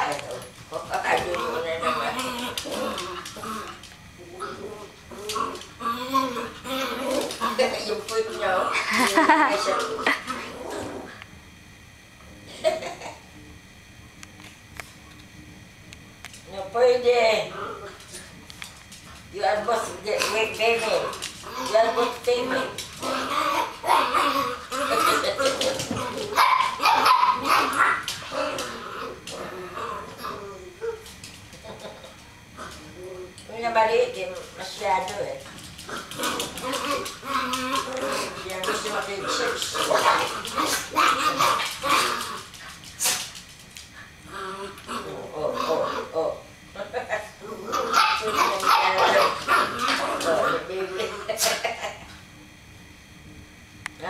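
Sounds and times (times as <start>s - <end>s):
small dogs barking and yipping: 23.5s - 28.3s, 47.7s - 50.4s
small dogs yipping and barking: 26.3s - 28.1s.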